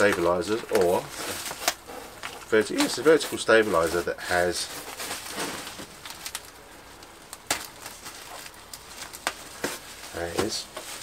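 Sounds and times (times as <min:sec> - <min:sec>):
bubble wrap rustling and crinkling: 0:00.0 - 0:11.0.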